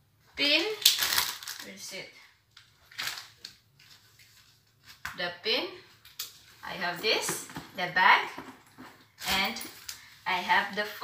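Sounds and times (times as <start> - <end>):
cardboard and plastic rustling: 2.5 - 5.1, 6.4 - 10.9.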